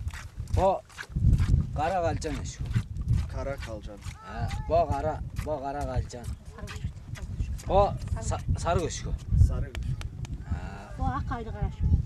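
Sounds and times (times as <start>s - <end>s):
wind rumbling on microphone: 0.0s - 12.0s
women speaking: 6.5s - 6.9s, 11.0s - 12.0s.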